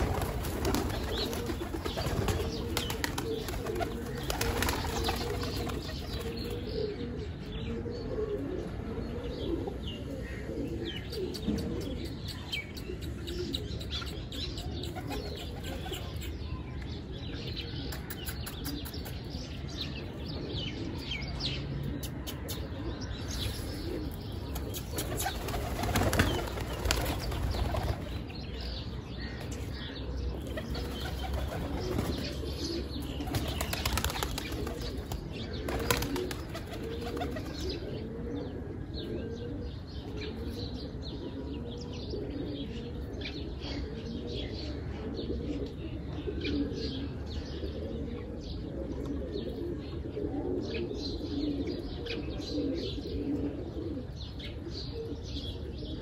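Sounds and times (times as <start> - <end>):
pigeon wings flapping: 0.0 - 5.9, 24.6 - 28.1, 33.3 - 34.9, 35.7 - 37.5
pigeons cooing: 0.0 - 56.0.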